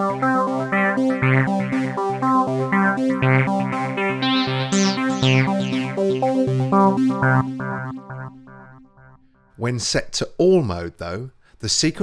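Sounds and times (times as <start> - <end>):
synthesizer sequenced short notes: 0.0 - 9.5.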